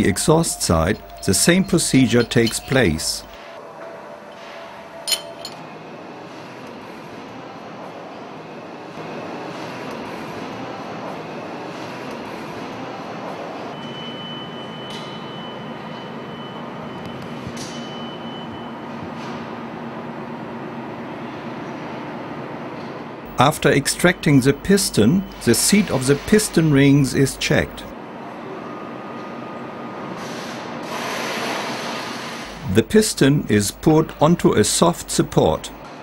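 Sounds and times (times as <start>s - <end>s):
machinery hum: 0.0s - 3.6s, 23.3s - 27.9s, 32.5s - 36.0s
metallic clinks of tools: 0.1s - 3.4s, 5.1s - 5.6s.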